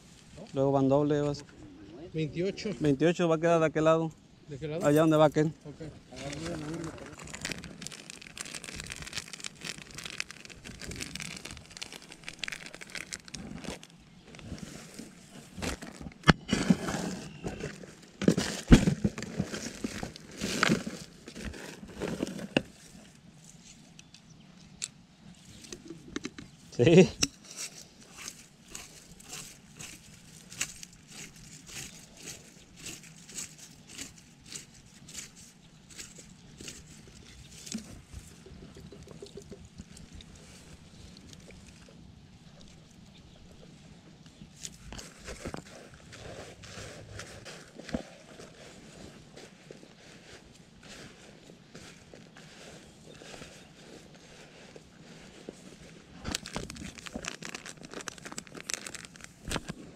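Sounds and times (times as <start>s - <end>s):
paper bag crinkling: 6.1s - 23.1s, 27.8s - 38.3s, 56.2s - 59.9s.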